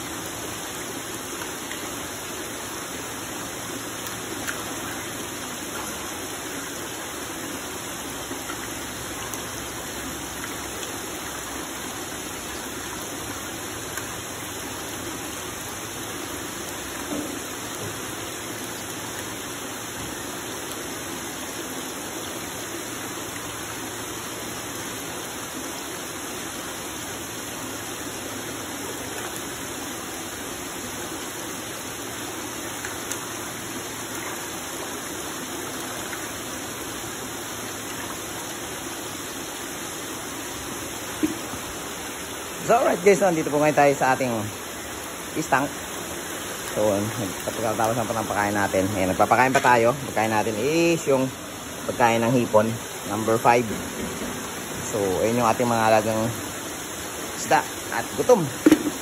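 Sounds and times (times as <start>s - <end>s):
water running through pipes: 0.0s - 59.0s
water splashing in tanks: 0.0s - 59.0s.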